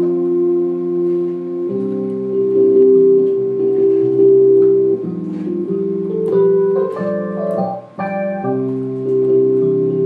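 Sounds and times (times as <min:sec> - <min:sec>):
electric piano chords: 0:00.0 - 0:10.0.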